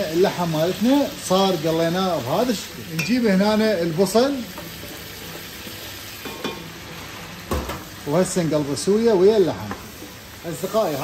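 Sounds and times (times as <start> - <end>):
meat sizzling in a pot: 0.0 - 11.0.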